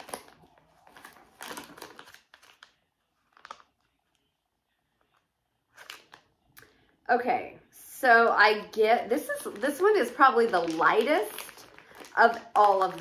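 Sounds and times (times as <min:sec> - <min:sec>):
plastic bag crinkling: 0:00.0 - 0:04.0, 0:09.0 - 0:13.0.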